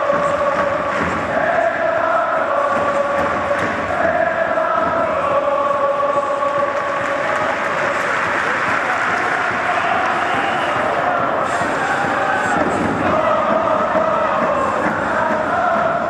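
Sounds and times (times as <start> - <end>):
crowd chanting in unison: 0.0 - 16.0.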